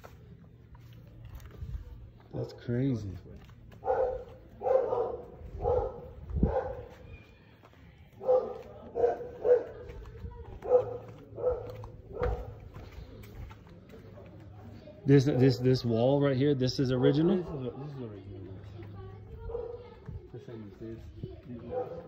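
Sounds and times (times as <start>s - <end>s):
dog barking: 3.8s - 7.1s, 8.2s - 10.0s, 10.6s - 12.6s, 15.2s - 15.7s, 19.5s - 19.9s, 21.6s - 22.0s.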